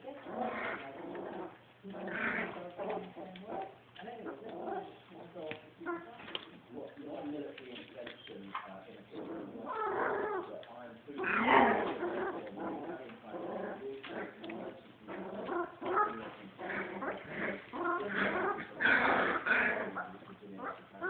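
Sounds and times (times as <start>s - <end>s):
puppies calling: 8.1s - 21.0s.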